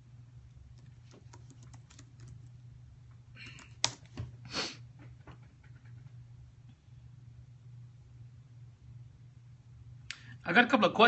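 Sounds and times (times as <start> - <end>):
steady low hum: 0.0 - 11.0
typing on computer keyboard: 0.7 - 2.5, 3.4 - 4.1.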